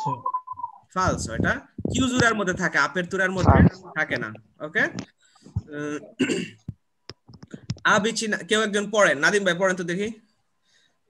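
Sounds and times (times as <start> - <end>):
man clearing his throat: 6.1 - 6.7.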